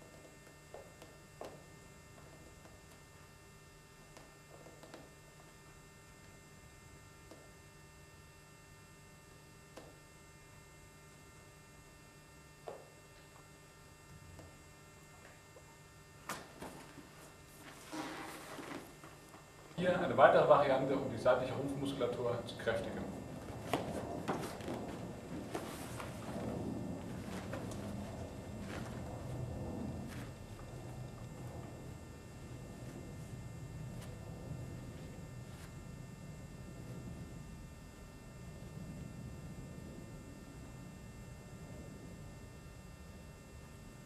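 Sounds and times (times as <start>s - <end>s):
faint electrical hum: 0.0s - 44.0s
body rustling on gym mat: 16.3s - 19.5s, 22.9s - 32.0s.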